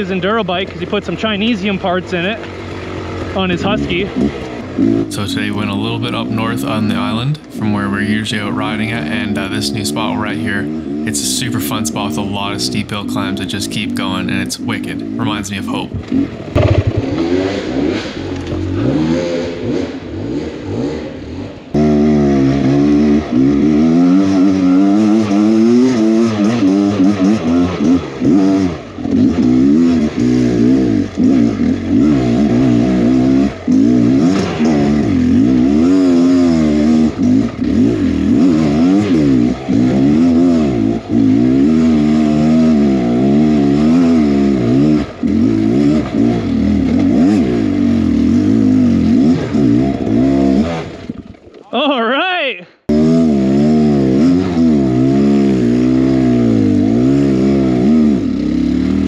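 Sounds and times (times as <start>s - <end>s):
dirt bike engine revving: 0.0s - 51.3s, 52.9s - 59.0s.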